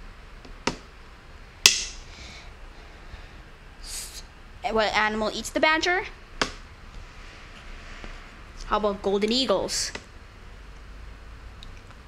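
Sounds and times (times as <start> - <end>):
sharp knocks: 1.7 - 2.0.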